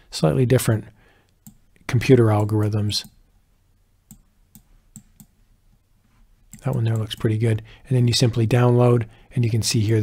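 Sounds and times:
computer mouse clicks: 0:01.3 - 0:03.2, 0:04.1 - 0:05.4, 0:06.5 - 0:07.3.

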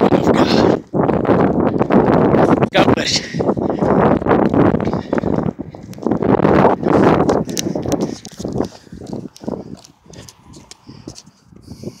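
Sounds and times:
footsteps on rubber track: 0:00.0 - 0:12.0
heavy breathing: 0:04.8 - 0:06.0, 0:06.8 - 0:12.0.

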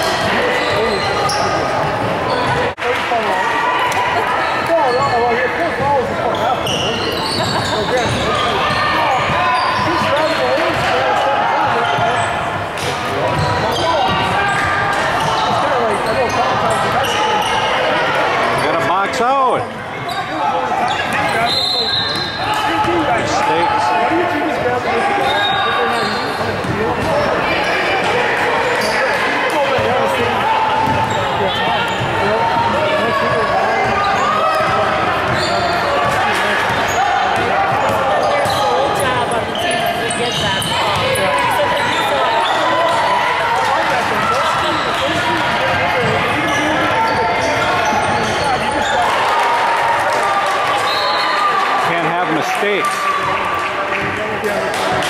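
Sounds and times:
chatter and shouts: 0:00.0 - 0:55.0
basketball bouncing on wooden court: 0:30.8 - 0:31.2.

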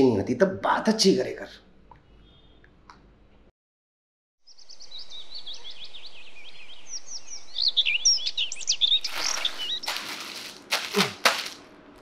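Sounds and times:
birds chirping and twittering: 0:04.5 - 0:10.5
loud rustling: 0:09.0 - 0:11.7.

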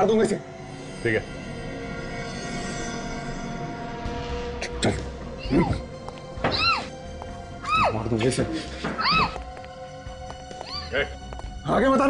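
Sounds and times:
tense music drone: 0:00.0 - 0:11.6.

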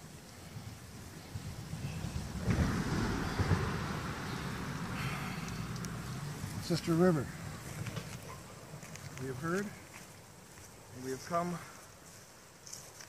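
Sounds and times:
wind buffeting microphone: 0:00.4 - 0:09.2
low rumble: 0:01.8 - 0:08.0.

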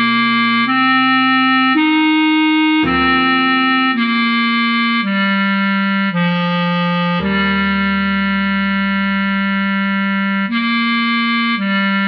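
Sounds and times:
bass clarinet long note: 0:00.0 - 0:12.0.

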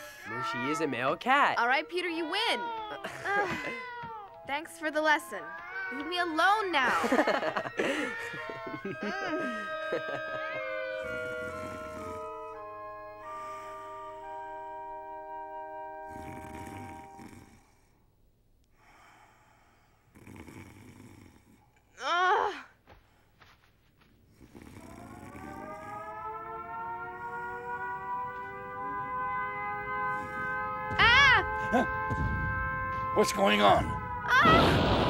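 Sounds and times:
air-raid siren wailing: 0:00.0 - 0:17.3, 0:24.8 - 0:35.0
soft woodwind notes: 0:08.2 - 0:17.2, 0:26.5 - 0:34.6
anti-aircraft fire booms: 0:30.3 - 0:35.0
short falling cry: 0:34.2 - 0:35.0.

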